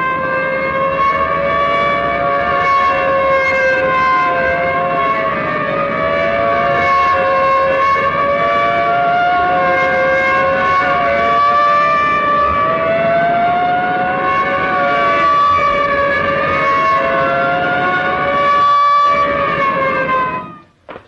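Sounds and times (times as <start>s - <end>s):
police siren wailing: 0.0s - 21.0s.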